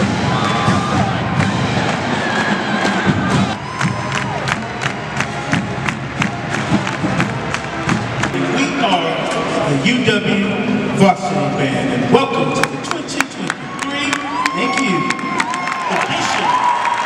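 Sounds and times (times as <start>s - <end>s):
crowd cheering and shouting: 0.0s - 9.9s, 12.3s - 17.0s
marching band brass and drums: 0.0s - 15.9s.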